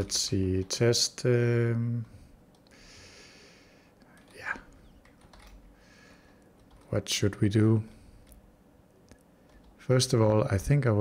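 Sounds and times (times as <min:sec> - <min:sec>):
soft breathy noise: 0:02.0 - 0:04.9, 0:05.6 - 0:06.6, 0:07.8 - 0:08.4
computer keyboard keystrokes: 0:04.1 - 0:05.6, 0:06.6 - 0:07.0, 0:09.4 - 0:09.8.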